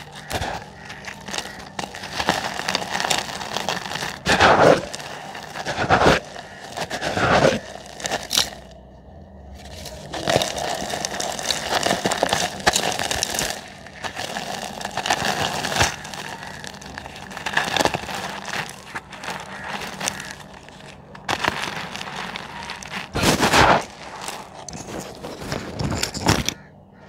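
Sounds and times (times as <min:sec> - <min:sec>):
cement crushed by hand: 0:00.0 - 0:08.8, 0:09.6 - 0:26.7.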